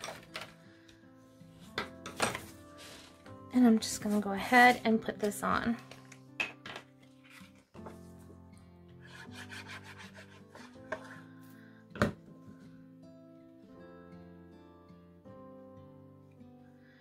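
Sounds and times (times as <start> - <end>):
soft background music: 0.0 - 17.0.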